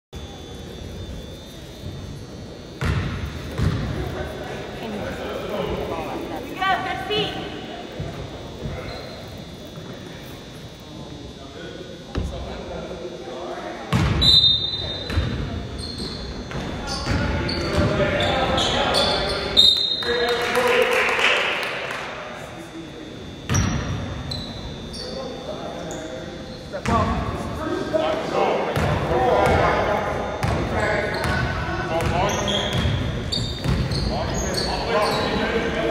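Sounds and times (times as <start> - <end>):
chatter of people: 0.2 - 35.9.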